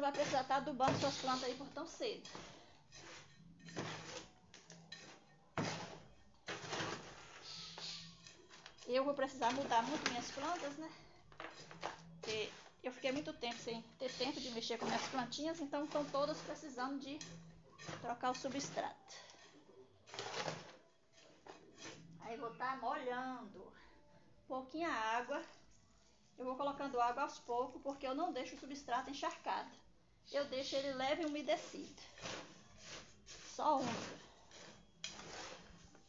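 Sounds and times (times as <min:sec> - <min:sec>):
trowel scraping gritty charcoal mix: 0:00.0 - 0:22.2, 0:30.4 - 0:36.0.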